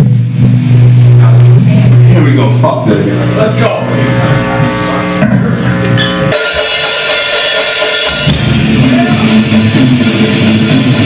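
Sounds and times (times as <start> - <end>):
electric string instrument drone: 1.1 - 9.2.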